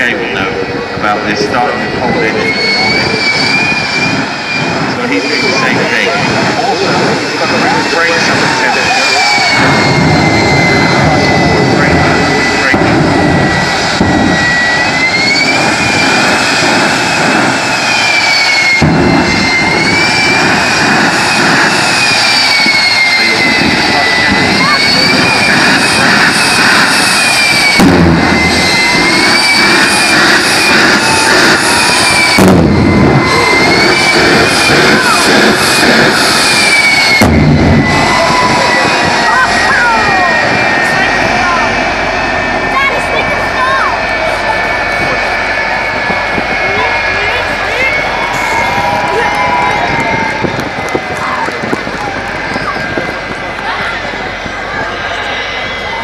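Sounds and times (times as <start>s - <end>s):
jet engine roaring: 0.0s - 56.0s.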